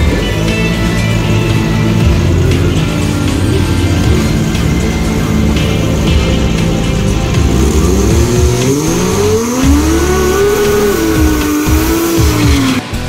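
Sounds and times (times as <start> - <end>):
background music: 0.0 - 13.0
truck engine revving: 0.0 - 13.0.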